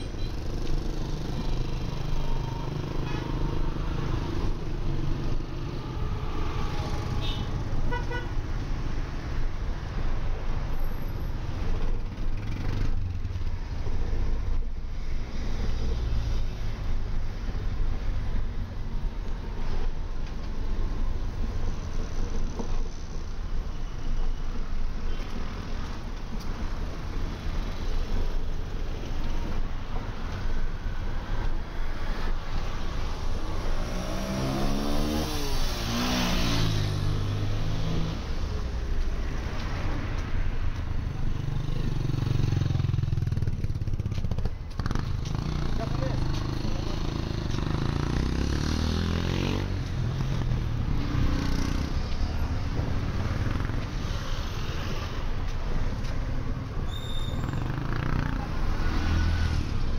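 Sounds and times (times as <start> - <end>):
traffic rumble: 0.0 - 59.9.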